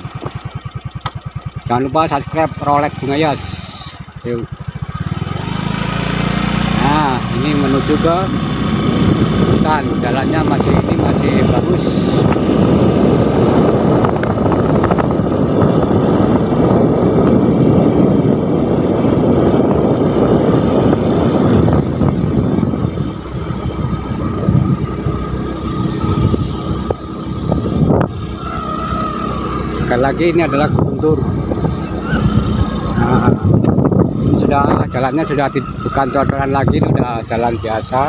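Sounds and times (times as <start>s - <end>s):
tyres on road: 0.0s - 38.0s
vehicle engine: 0.0s - 38.0s
wind rushing over microphone: 1.8s - 38.0s.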